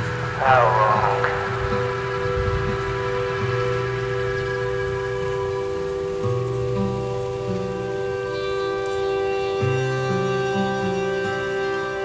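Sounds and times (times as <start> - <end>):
slow held musical chords: 0.0 - 12.0
steady falling rain: 0.0 - 12.0.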